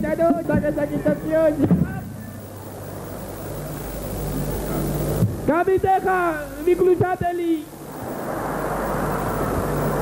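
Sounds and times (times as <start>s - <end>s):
electrical hum with hiss: 0.0s - 10.0s.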